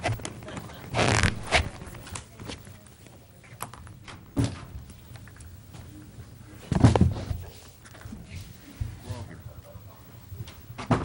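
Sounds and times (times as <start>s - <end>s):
people moving about a room: 0.0s - 11.0s
scraping rustle: 0.8s - 2.1s.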